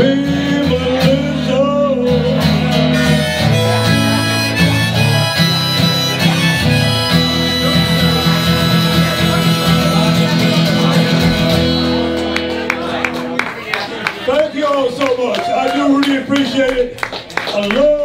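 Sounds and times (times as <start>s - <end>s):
acoustic guitar strumming: 0.0s - 13.6s
harmonica wailing: 2.4s - 11.8s.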